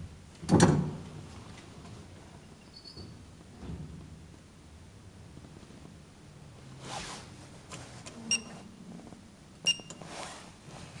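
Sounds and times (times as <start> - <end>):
elevator button beep: 8.3 - 8.5, 9.6 - 10.0.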